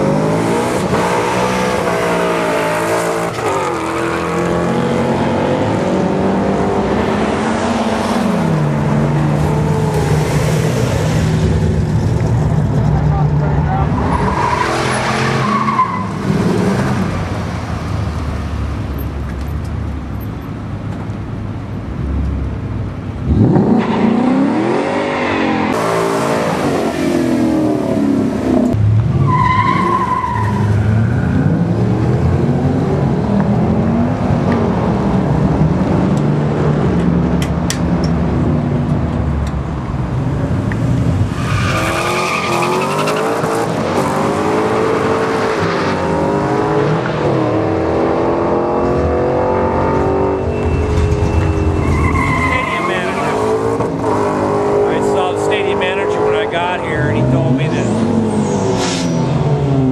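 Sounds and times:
cars accelerating and passing: 0.0s - 59.9s.

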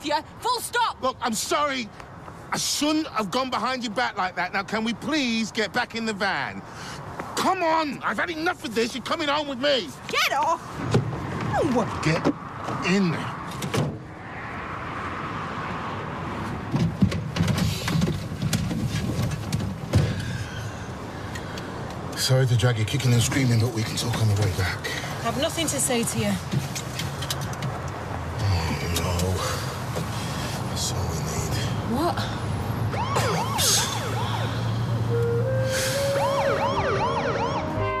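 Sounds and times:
emergency siren wailing: 32.9s - 38.0s.

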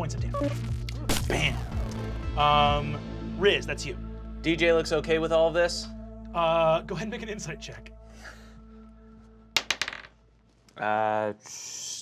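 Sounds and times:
faint background music: 0.0s - 12.0s
die clattering on table: 9.6s - 10.2s.

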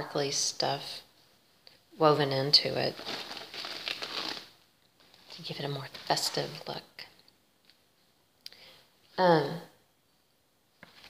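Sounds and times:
crinkly fabric rustling: 2.5s - 6.8s, 10.8s - 11.0s.

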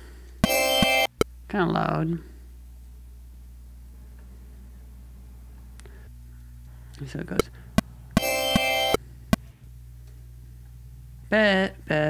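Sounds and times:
synth bell chord: 0.4s - 1.1s, 8.2s - 9.0s.

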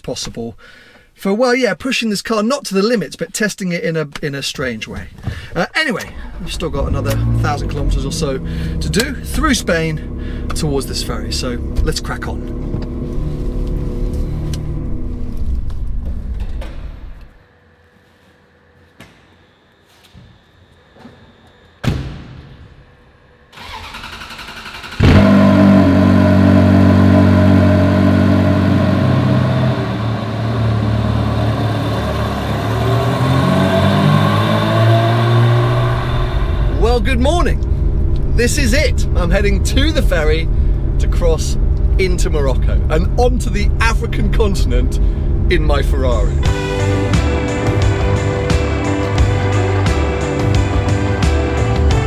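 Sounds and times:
engine starting and idling: 5.3s - 17.2s, 23.5s - 33.2s
starter motor cranking: 23.6s - 25.4s.

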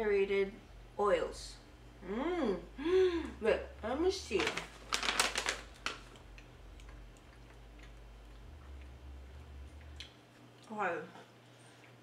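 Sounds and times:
plastic wrapper crinkling: 4.2s - 7.0s.

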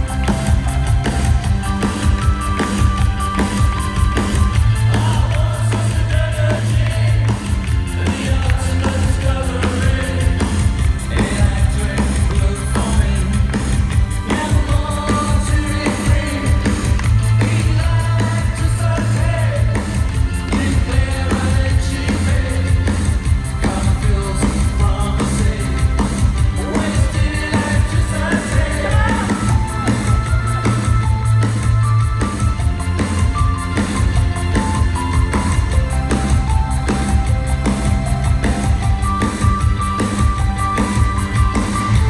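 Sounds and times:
live synth-pop band playing: 0.0s - 42.0s.

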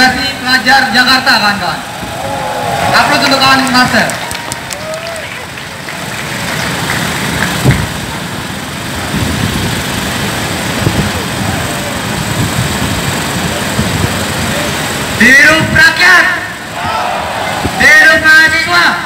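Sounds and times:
street rumble: 0.0s - 19.0s
crowd murmur: 10.6s - 15.2s, 16.6s - 17.8s.

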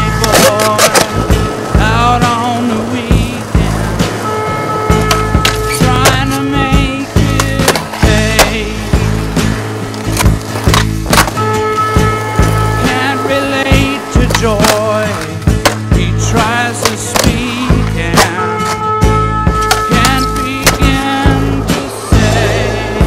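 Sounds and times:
skateboard wheels rolling on concrete: 0.0s - 23.0s
skateboards clacking: 0.0s - 23.0s
music with steady bass beat: 1.1s - 23.0s.

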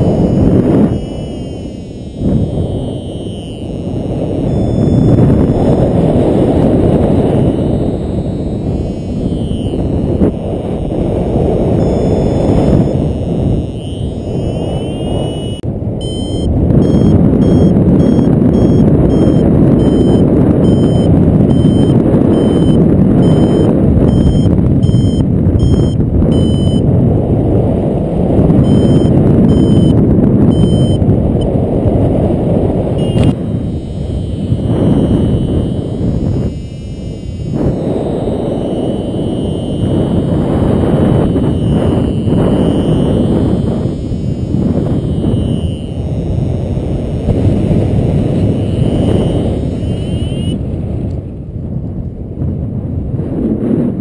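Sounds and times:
variometer beeping: 0.0s - 26.9s, 28.4s - 50.6s
wind buffeting microphone: 0.0s - 54.0s.

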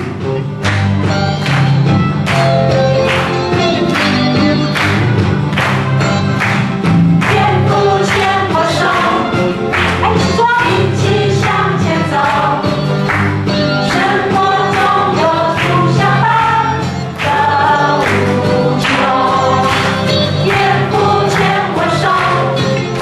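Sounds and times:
bass notes: 0.0s - 23.0s
drum beats: 0.0s - 23.0s
praise band playing: 0.0s - 23.0s
congregation singing: 7.2s - 9.6s, 13.8s - 23.0s.

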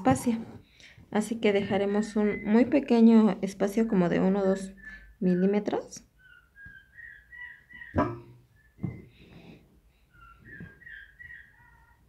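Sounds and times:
high whistled chirps: 2.0s - 2.8s, 6.2s - 9.2s, 10.1s - 11.8s
sharp knock: 8.0s - 8.4s.

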